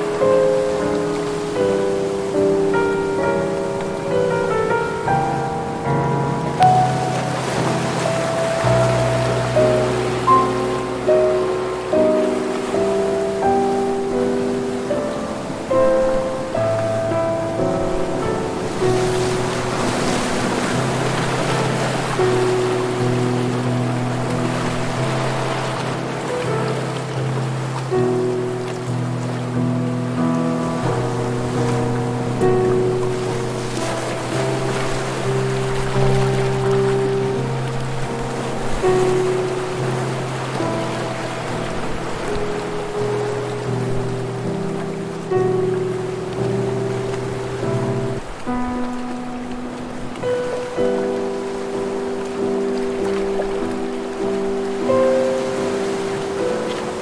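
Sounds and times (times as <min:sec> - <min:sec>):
ocean surf: 0:00.0 - 0:57.0
soft instrumental music: 0:00.0 - 0:57.0.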